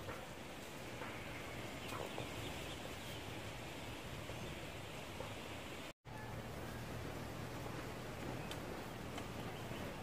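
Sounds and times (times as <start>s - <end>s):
outdoor background hiss: 0.0s - 10.0s.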